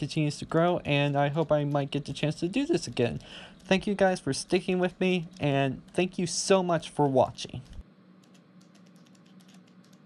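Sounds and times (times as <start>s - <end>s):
keyboard typing: 0.5s - 10.0s.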